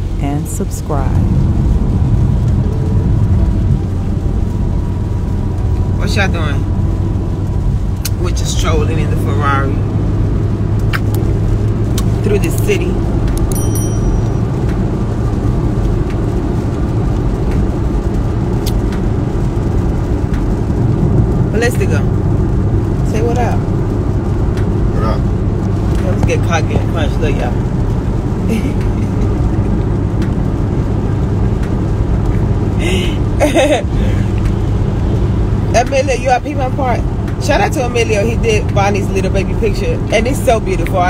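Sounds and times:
car engine and road rumble: 0.0 - 41.0.

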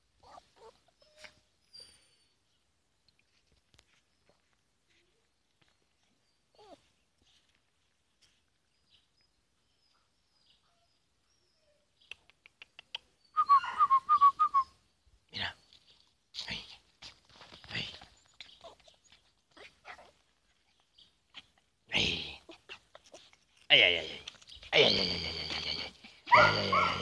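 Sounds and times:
puppy yipping: 0.2 - 1.4, 26.3 - 27.0.

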